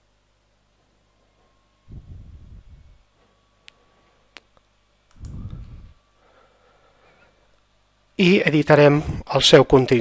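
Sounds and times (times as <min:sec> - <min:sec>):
low muffled rumble: 0:01.9 - 0:03.2, 0:05.1 - 0:06.0
computer mouse clicks: 0:04.4 - 0:05.6.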